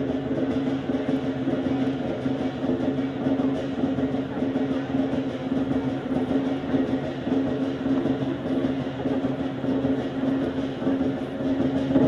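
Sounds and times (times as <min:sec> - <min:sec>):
big drum beats: 0:00.0 - 0:12.0
rapid cymbal clashes: 0:00.0 - 0:12.0.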